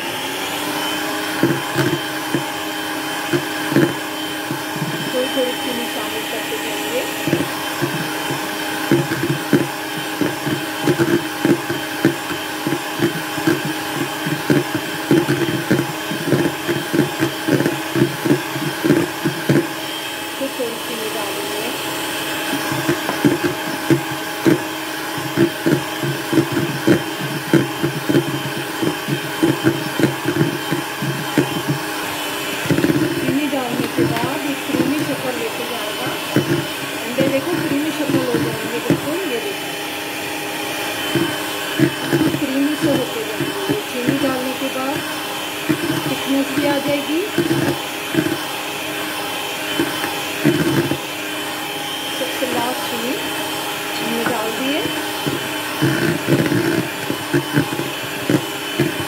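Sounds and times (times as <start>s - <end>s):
electric hand mixer whisking: 0.0s - 59.0s
beaters knocking plastic bowl: 7.1s - 19.8s, 22.4s - 39.4s, 41.0s - 48.5s, 49.7s - 51.1s.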